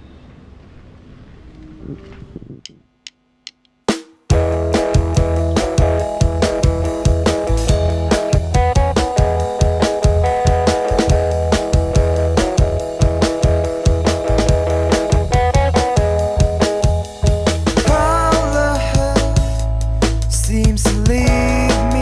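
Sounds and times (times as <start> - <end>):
drum kit beat: 3.8 - 22.0
bass guitar: 4.3 - 22.0
electric guitar chords: 4.3 - 22.0.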